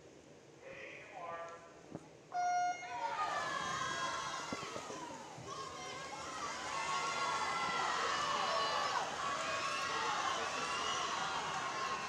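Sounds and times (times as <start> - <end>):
spectators shouting and cheering: 2.8 - 12.0.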